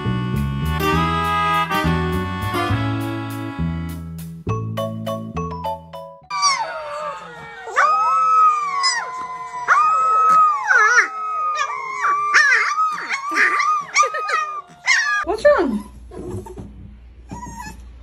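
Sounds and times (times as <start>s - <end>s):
puppies howling: 6.3s - 15.3s.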